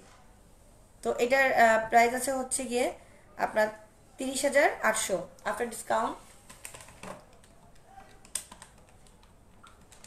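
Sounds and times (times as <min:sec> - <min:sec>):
faint clicks and taps: 0:06.4 - 0:10.0.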